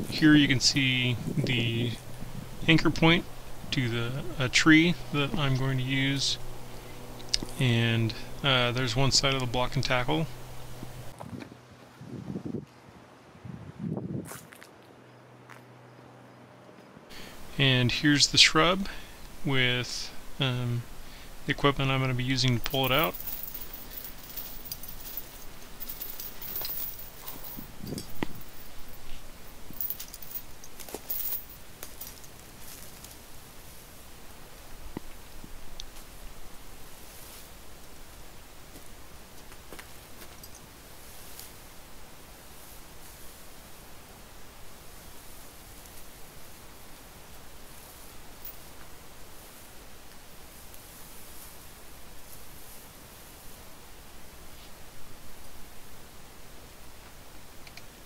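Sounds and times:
foliage and mulch rustling: 0:18.6 - 0:54.9
metal chain clicks: 0:22.4 - 0:33.1.

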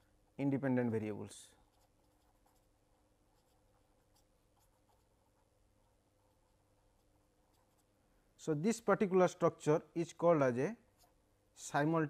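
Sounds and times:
pen scratching on paper: 0:01.6 - 0:08.0, 0:10.9 - 0:11.6.

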